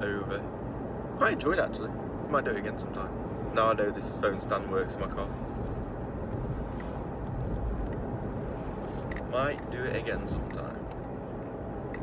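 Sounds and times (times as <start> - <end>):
car road and engine rumble: 0.0 - 12.0.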